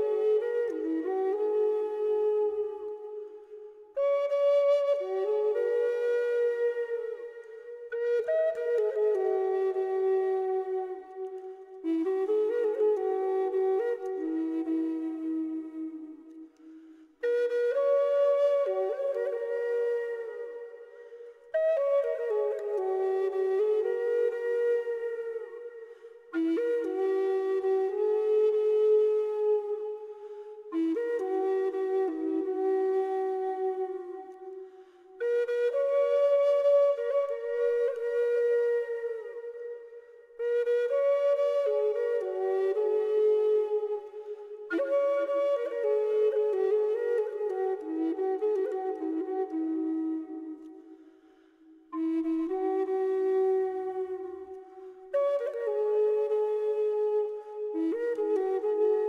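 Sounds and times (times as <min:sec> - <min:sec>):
slow flute music: 0:00.0 - 0:59.0.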